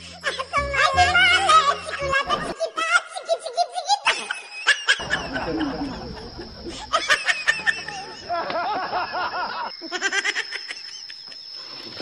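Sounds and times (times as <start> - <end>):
high-pitched laughter: 0.2 - 11.3.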